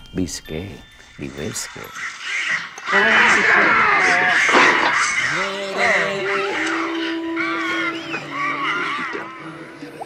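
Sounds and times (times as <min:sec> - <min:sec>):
horror film soundtrack: 0:00.6 - 0:10.0
wavering moaning tones: 0:01.2 - 0:10.0.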